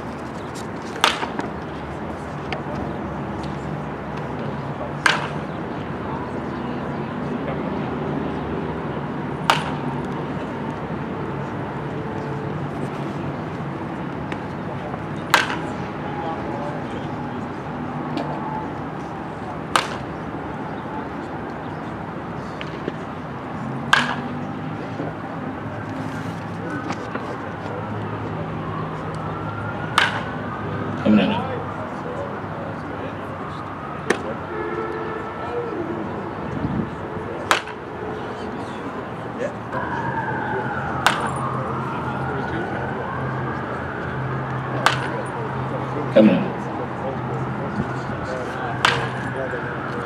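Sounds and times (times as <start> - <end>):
baseball bat hitting ball: 1.0 - 1.5, 5.0 - 5.5, 9.4 - 9.9, 15.3 - 15.8, 19.7 - 20.1, 23.9 - 24.4, 29.9 - 30.3, 37.5 - 37.8, 41.0 - 41.4, 44.8 - 45.1, 46.2 - 46.6, 48.8 - 49.3.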